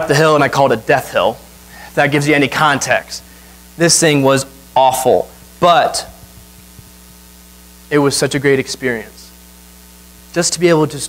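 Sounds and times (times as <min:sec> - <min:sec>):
person speaking: 0:00.0 - 0:07.1, 0:07.9 - 0:09.4
electrical mains hum: 0:00.0 - 0:11.0
faint hiss: 0:00.0 - 0:11.0.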